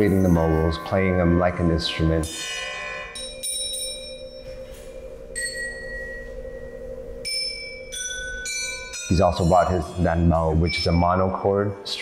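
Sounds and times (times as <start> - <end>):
metal discs ringing: 0.0 - 11.6
low ringing tone: 0.0 - 12.0.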